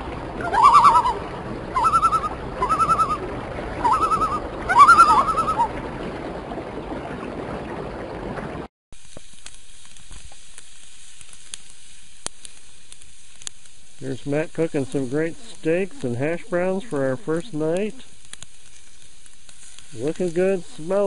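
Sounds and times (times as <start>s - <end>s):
loon tremolo call: 0.0s - 5.8s
fire crackling: 5.8s - 21.0s
food sizzling over campfire: 9.0s - 21.0s.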